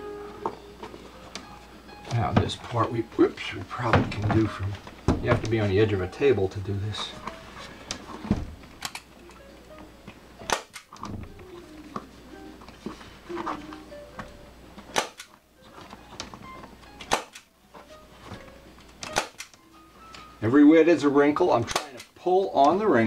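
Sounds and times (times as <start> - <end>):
staple gun snapping: 8.8 - 9.1, 10.5 - 11.0, 14.9 - 15.4, 17.0 - 17.5, 19.0 - 19.6, 21.7 - 22.1.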